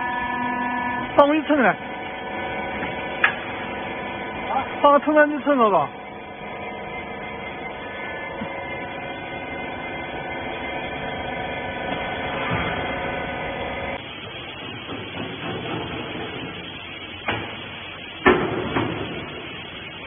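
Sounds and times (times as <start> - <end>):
hydraulic power unit hum and whine: 0.0 - 20.0
workshop noise: 0.0 - 20.0.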